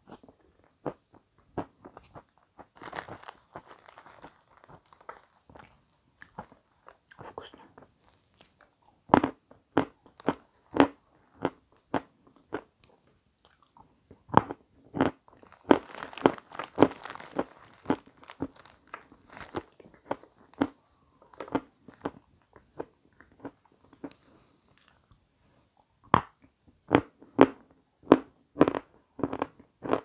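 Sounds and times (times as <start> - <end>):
person chewing crunchy food: 0.0 - 30.0.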